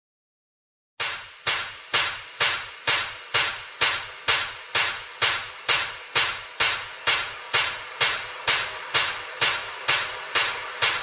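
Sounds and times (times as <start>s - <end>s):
dance beat percussive hits: 1.0s - 11.0s.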